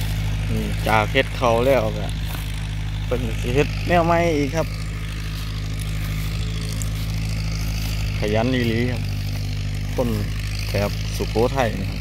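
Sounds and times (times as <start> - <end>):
tractor engine running steadily: 0.0 - 12.0.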